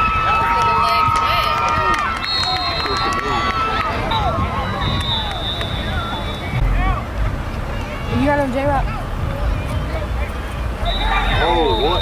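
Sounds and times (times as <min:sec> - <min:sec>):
crowd shouting and yelling: 0:00.0 - 0:12.0.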